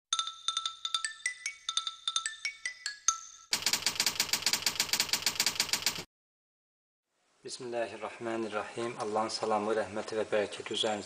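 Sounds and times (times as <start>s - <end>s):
rapid mechanical clicks: 3.5s - 6.1s.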